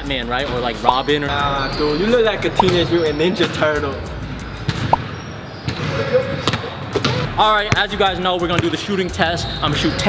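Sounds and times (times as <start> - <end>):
basketball bouncing on gym floor: 4.7 - 7.8, 8.5 - 8.8.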